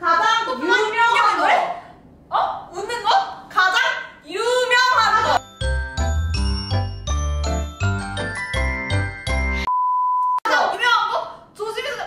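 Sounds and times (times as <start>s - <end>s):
high beep: 9.6s - 10.5s.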